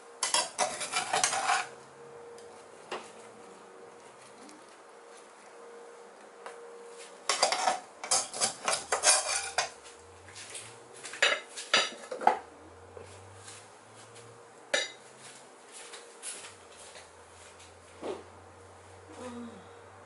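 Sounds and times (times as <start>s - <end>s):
metal spatula scraping frying pan: 0.2s - 1.8s, 7.3s - 9.8s
spatula clinking on pan: 14.7s - 15.0s.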